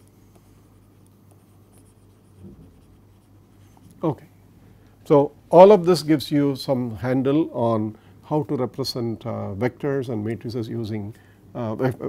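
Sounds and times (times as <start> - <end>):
low electrical hum: 0.0 - 12.0
stylus scratching on tablet screen: 0.3 - 4.0.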